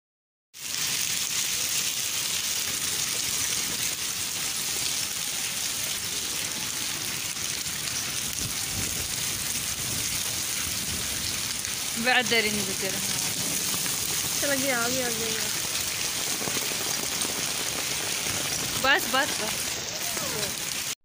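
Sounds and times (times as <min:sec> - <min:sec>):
rain and sleet on concrete: 0:00.5 - 0:21.0.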